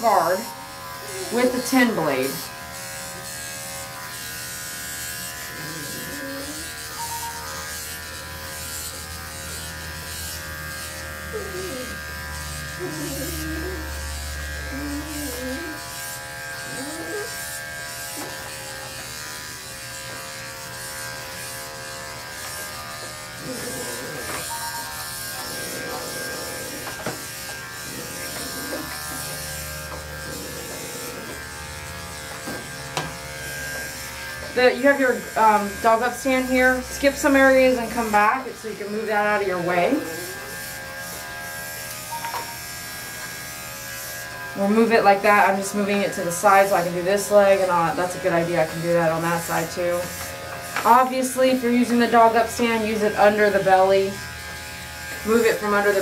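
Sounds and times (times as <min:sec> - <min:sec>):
electric clippers humming: 0:00.0 - 0:56.0.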